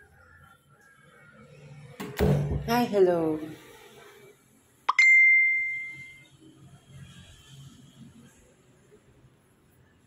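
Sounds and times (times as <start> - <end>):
bright bell ding: 4.9 - 6.2.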